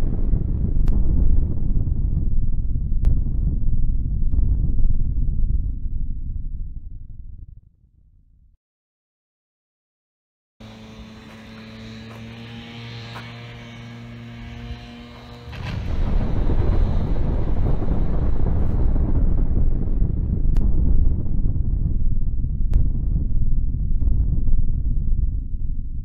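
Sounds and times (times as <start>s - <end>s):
explosion deep rumble: 0.0s - 8.6s, 15.5s - 26.0s
steady droning tone: 10.6s - 26.0s.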